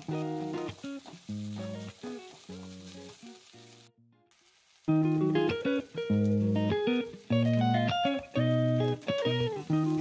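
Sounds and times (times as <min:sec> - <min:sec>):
food sizzling in hot oil: 0:00.0 - 0:10.0.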